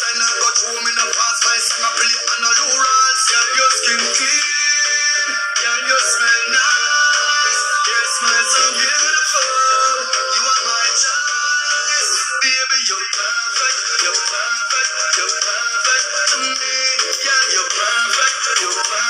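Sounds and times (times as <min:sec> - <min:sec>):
song with singing: 0:00.0 - 0:19.0.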